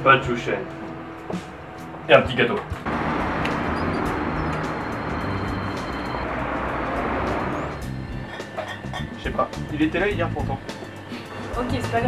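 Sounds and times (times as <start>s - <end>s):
background music: 0.0s - 12.0s
road traffic rushing: 2.7s - 12.0s.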